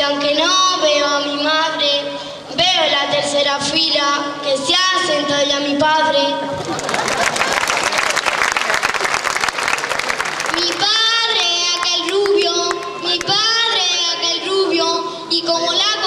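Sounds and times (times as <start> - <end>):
child singing: 0.0 - 6.4, 10.5 - 16.0
audience applauding: 6.6 - 12.9.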